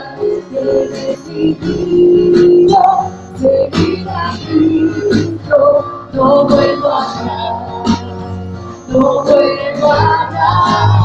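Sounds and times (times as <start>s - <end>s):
acoustic guitar: 0.0s - 11.0s
keyboard: 0.0s - 11.0s
women singing into microphones: 0.0s - 11.0s.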